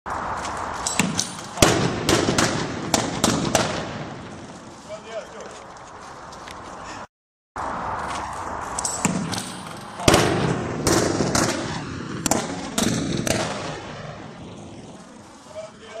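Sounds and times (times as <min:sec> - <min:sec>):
rifle shots echoing: 0:00.9 - 0:04.5, 0:09.0 - 0:14.1.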